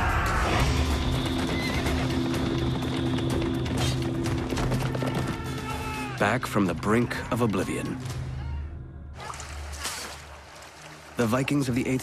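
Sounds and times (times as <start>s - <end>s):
horses galloping: 0.6s - 6.2s.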